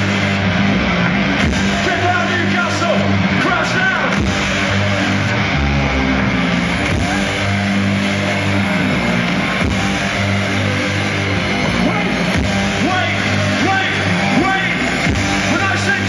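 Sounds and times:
electric guitar: 0.0 - 16.0
heavy sustained bass line: 0.0 - 16.0
live rock band playing: 0.0 - 16.0.

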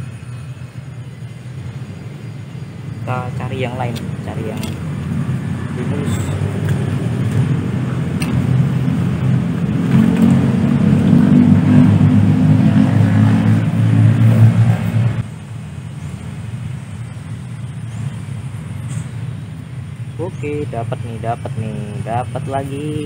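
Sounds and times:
engine low rumble: 0.0 - 23.0.

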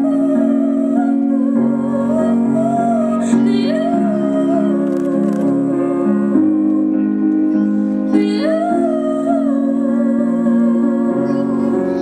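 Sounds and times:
young woman singing: 0.0 - 12.0.

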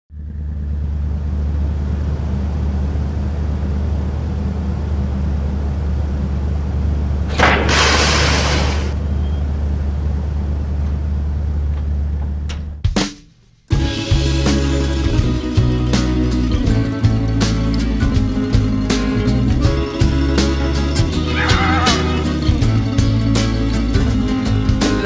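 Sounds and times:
loud hissing noise: 7.3 - 9.0.

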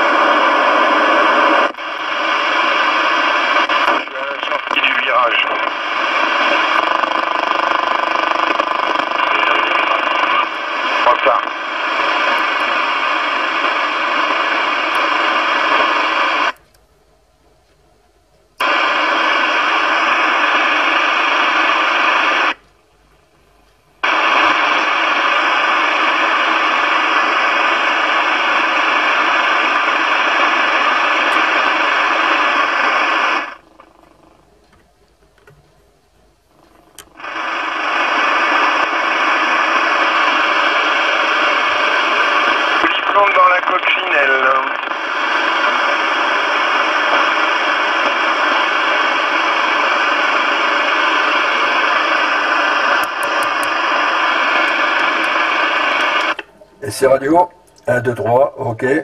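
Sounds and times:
faint voices over radio: 0.0 - 6.8, 8.8 - 16.6, 18.6 - 22.5, 24.0 - 33.6, 37.2 - 59.0
radio static hiss: 0.0 - 16.7, 18.5 - 59.0.

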